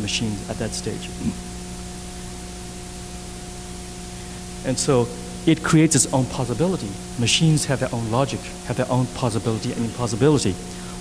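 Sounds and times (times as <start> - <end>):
person's voice: 0.0 - 1.4, 4.6 - 10.6
electrical mains hum: 0.0 - 11.0
recording hiss: 0.0 - 11.0.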